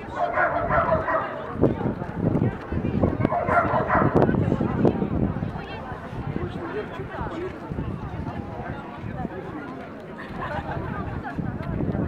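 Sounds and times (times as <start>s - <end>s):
people talking: 0.0s - 12.0s
dog barking: 0.2s - 1.4s, 3.3s - 4.2s.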